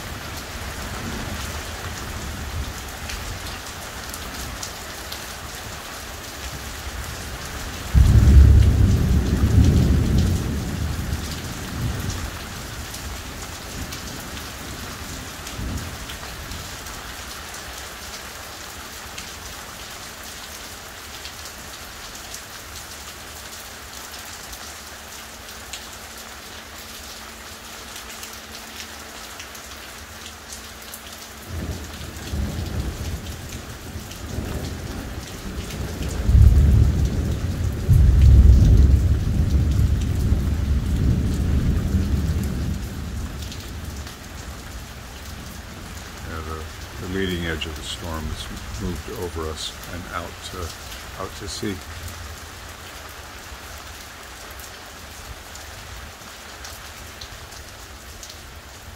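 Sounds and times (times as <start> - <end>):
hard rain: 0.0 - 58.9
thunder rumbling: 7.8 - 14.8, 31.5 - 44.0.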